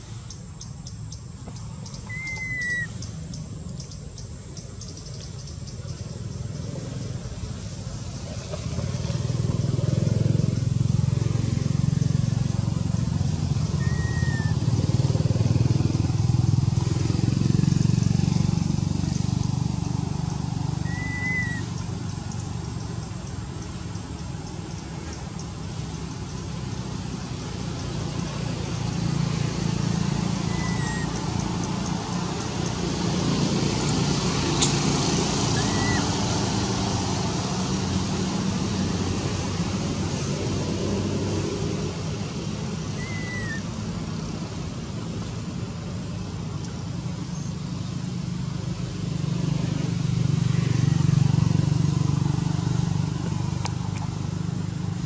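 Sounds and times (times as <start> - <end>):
passing motor vehicles rumbling: 0.0 - 55.0.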